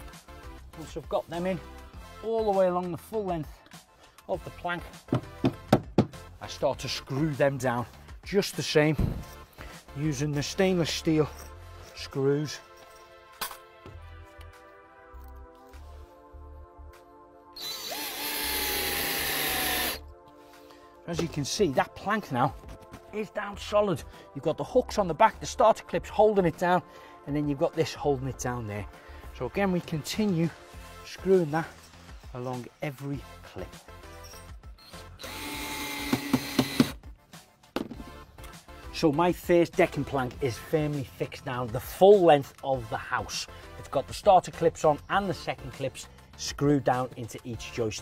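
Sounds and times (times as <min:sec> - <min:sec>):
background music: 0:00.0 - 0:48.0
cordless drill driving screw: 0:17.6 - 0:20.0, 0:34.8 - 0:37.0.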